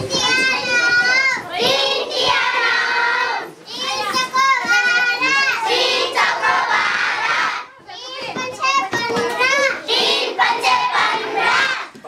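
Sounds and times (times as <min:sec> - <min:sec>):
children calling out together: 0:00.0 - 0:12.0.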